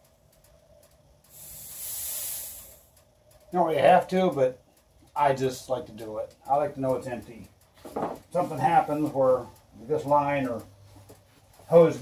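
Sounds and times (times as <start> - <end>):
cutting torch gas hissing: 1.1 - 3.0.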